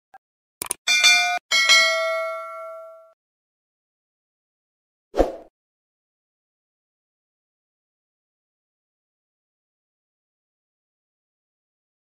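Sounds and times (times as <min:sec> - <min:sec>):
bright bell dings: 0:00.9 - 0:03.2.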